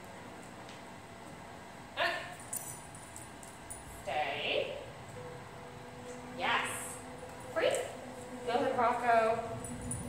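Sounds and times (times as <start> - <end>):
faint metallic jingle: 2.2 - 4.5, 6.6 - 10.0.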